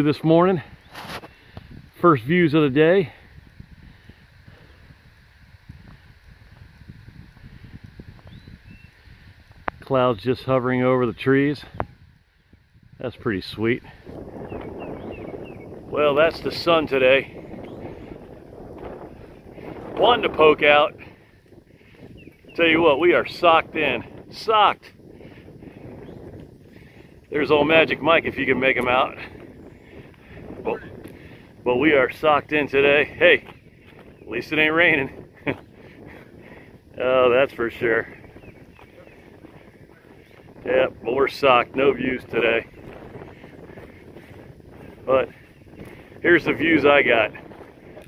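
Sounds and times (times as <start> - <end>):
wind rumbling on microphone: 0.0 - 48.0
faint bird chirps: 8.2 - 9.1.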